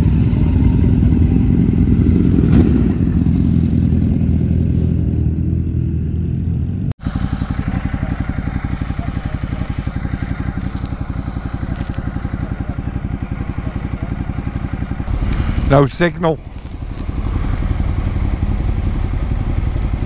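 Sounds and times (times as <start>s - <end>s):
motorcycle engine idling: 0.0s - 20.0s
motorcycle engine rising in pitch: 0.0s - 20.0s.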